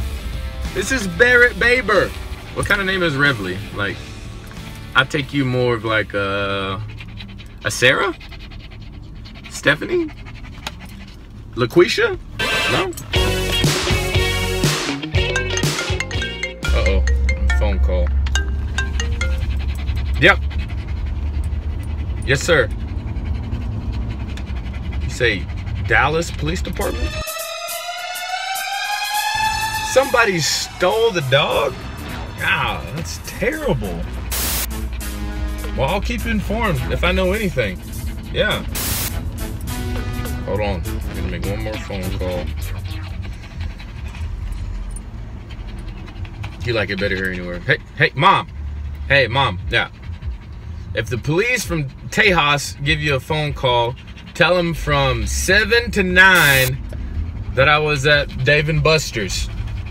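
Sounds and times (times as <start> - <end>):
idling vehicle rumble: 0.0 - 27.3, 28.2 - 59.9
dog panting: 0.0 - 59.9
marimba ringtone: 15.1 - 19.6
low rumble in car cabin: 35.7 - 59.9.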